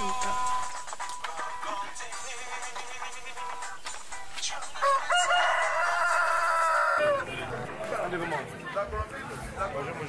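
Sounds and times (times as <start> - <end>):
rooster crowing: 4.8 - 7.3.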